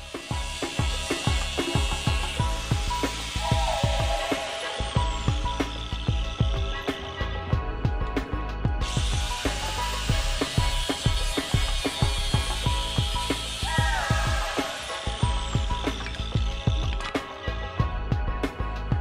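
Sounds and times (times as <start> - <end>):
angle grinder cutting metal: 0.0 - 7.3, 8.8 - 17.4
music with steady beat: 0.0 - 19.0.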